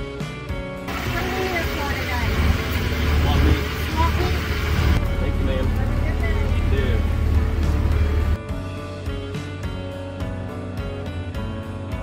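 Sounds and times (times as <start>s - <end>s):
indistinct talking: 0.9s - 7.1s
truck engine low rumble: 0.9s - 8.4s.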